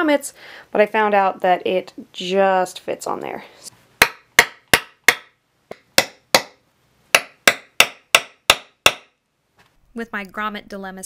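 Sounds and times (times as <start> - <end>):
hammer striking on wooden board: 4.0 - 9.2.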